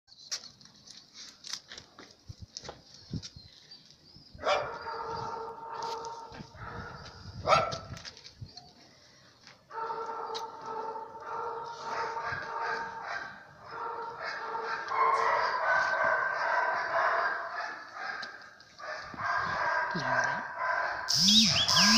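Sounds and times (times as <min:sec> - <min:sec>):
dogs barking: 0:04.4 - 0:07.9, 0:09.7 - 0:21.9
steady tone: 0:21.1 - 0:21.9.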